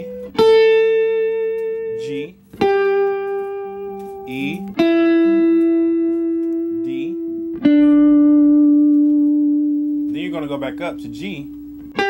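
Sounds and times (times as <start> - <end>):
plucked guitar note ringing: 0.0 - 12.0.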